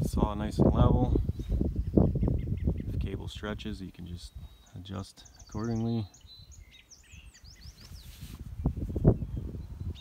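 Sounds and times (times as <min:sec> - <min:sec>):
birds chirping: 0:00.1 - 0:10.0.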